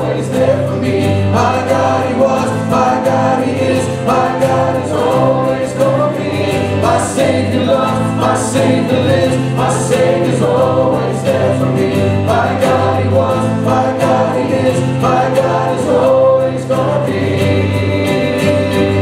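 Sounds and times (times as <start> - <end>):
acoustic guitar: 0.0 - 19.0
drums: 0.0 - 19.0
keyboard: 0.0 - 19.0
man and woman singing: 0.0 - 19.0.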